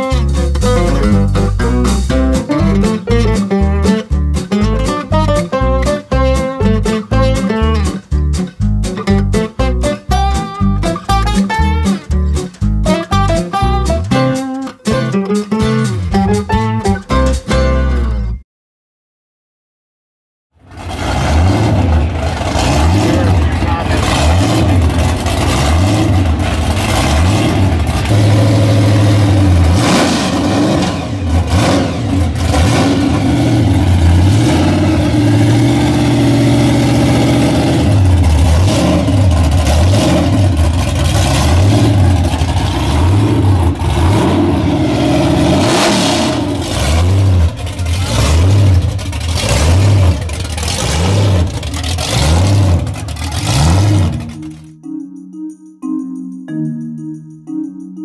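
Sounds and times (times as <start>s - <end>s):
drag car engine revving: 20.6s - 54.8s.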